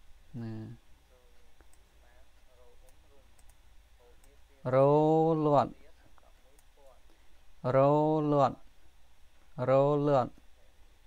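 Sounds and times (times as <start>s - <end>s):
person speaking: 0.3s - 8.7s, 9.5s - 10.8s
computer mouse clicks: 1.6s - 1.9s, 2.8s - 3.6s.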